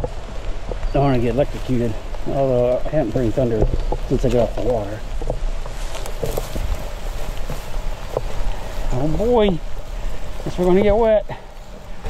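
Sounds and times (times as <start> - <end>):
footsteps through tall grass: 0.0 - 12.0
wind rumble on microphone: 0.0 - 12.0.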